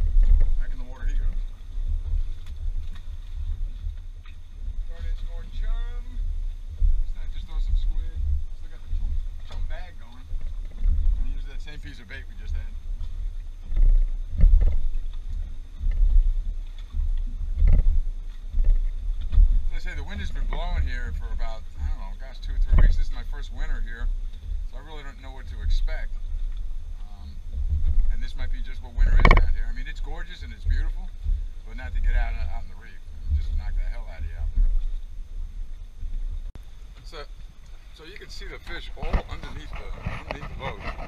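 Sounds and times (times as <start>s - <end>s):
wind buffeting microphone: 0.0s - 41.0s
indistinct talk: 38.0s - 41.0s.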